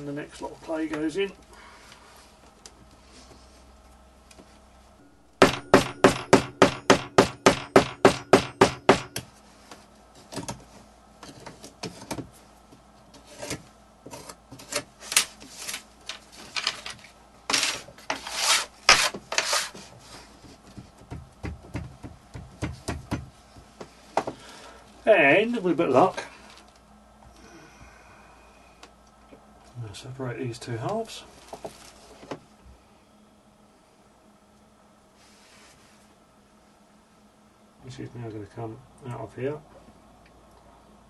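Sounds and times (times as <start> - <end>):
clay scraping and rubbing: 17.5 - 20.3.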